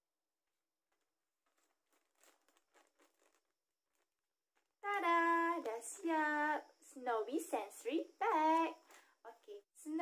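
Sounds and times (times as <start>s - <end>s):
plastic bag crinkling: 0.9s - 4.9s.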